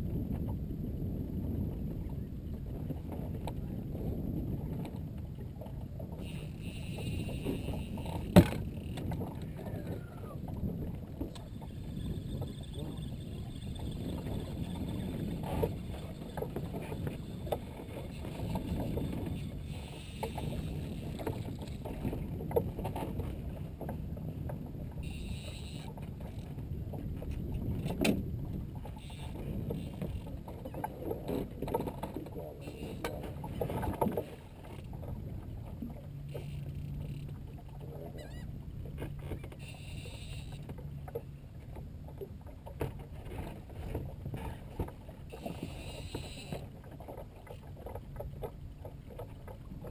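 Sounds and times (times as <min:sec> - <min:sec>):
rumble of wind and water: 0:00.0 - 0:49.9.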